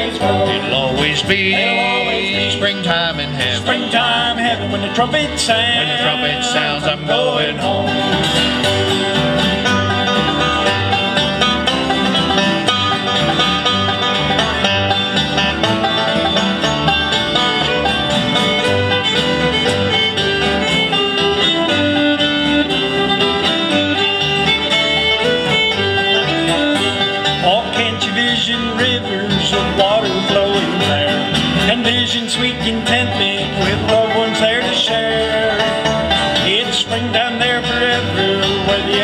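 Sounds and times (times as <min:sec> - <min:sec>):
acoustic guitars strumming and picking: 0:00.0 - 0:39.0
fiddle: 0:00.0 - 0:39.0
upright bass: 0:00.0 - 0:39.0.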